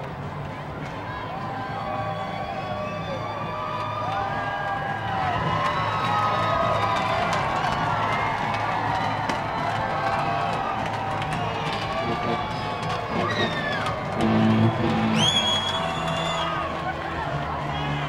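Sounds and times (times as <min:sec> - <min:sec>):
concert crowd cheering and yelling: 0:00.1 - 0:18.0.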